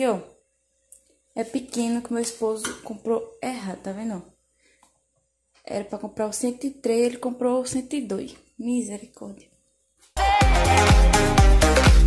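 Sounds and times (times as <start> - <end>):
woman speaking: 0.0 - 0.4, 1.4 - 4.3, 5.6 - 9.5.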